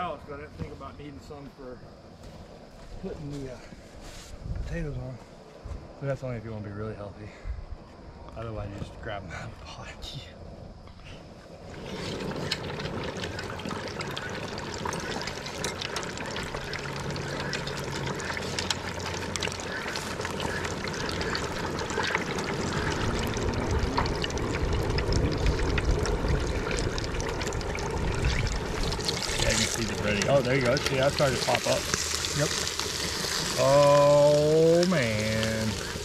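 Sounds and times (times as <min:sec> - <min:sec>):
fish frying in hot oil: 0:11.6 - 0:36.0.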